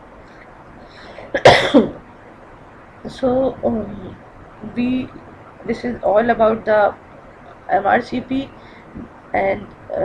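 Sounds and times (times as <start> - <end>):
person coughing: 1.2 - 2.0.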